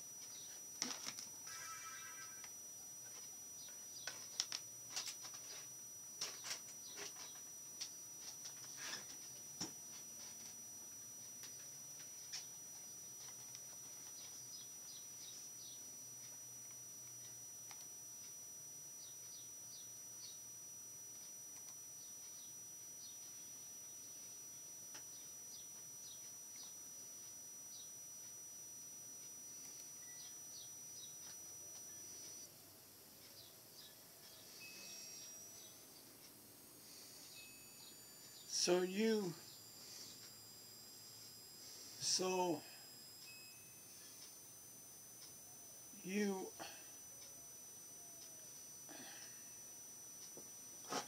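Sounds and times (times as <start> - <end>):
high-pitched whine: 0.0 - 51.0.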